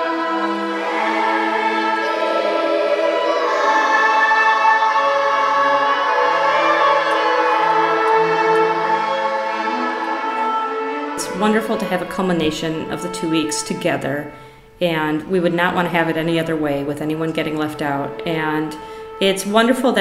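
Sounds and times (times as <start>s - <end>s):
children's choir singing: 0.0s - 14.4s
string instruments: 0.0s - 20.0s.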